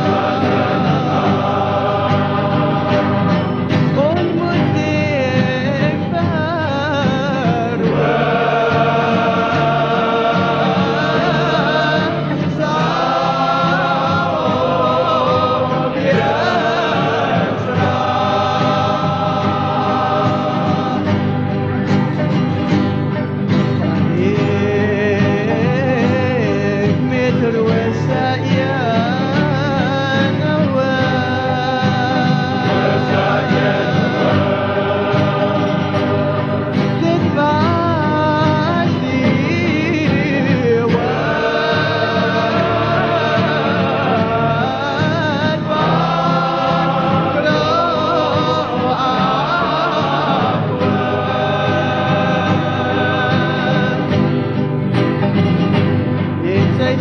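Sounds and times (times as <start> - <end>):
choir singing sustained: 0.0 - 57.0.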